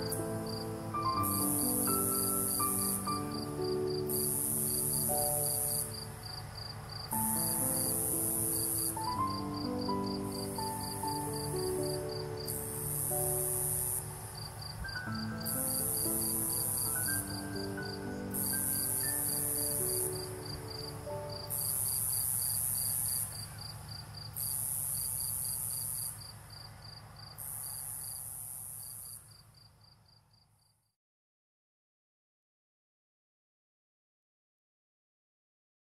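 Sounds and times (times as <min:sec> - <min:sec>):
soft music: 0:00.0 - 0:23.0
insect buzzing call: 0:00.0 - 0:29.7
cricket trill: 0:00.0 - 0:30.9.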